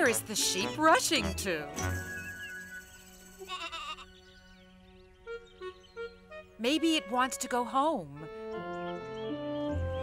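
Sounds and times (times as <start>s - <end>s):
soft background music: 0.0s - 10.0s
sheep bleating: 3.5s - 4.1s.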